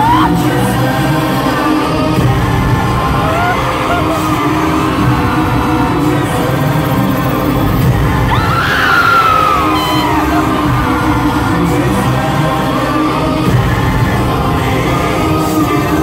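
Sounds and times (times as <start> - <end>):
fans screaming: 0.0 - 1.0, 3.0 - 6.9, 8.2 - 13.0
live pop music through pa: 0.0 - 16.0
man singing: 0.0 - 16.0.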